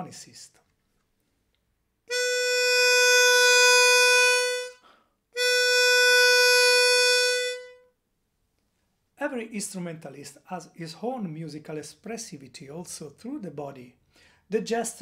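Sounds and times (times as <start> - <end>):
person talking: 0.0 - 0.7, 9.2 - 15.0
harmonica long held note: 2.1 - 7.8.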